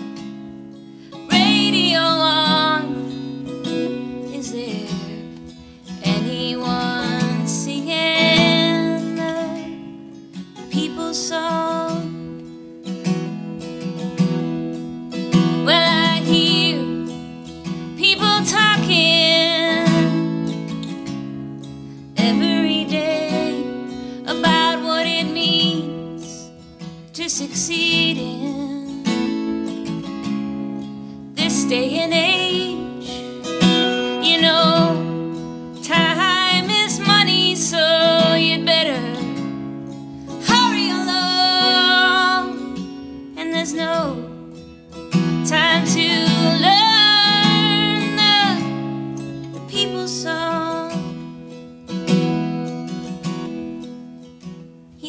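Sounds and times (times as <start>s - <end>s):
strummed acoustic guitar: 0.0s - 55.0s
woman singing folk song: 0.0s - 55.0s.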